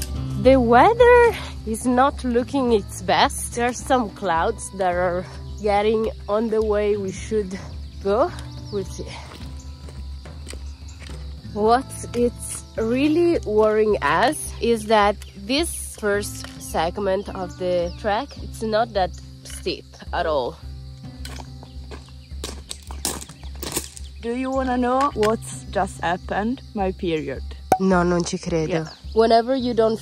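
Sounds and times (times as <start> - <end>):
background music: 0.0 - 30.0
footsteps crunching on gravel: 7.8 - 12.0, 20.8 - 25.4.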